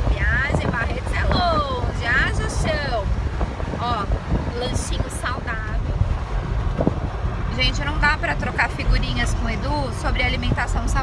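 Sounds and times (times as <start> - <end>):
woman's voice: 0.0 - 3.1, 3.8 - 5.8, 7.5 - 11.0
road rumble: 0.0 - 11.0
wind buffeting microphone: 0.0 - 11.0.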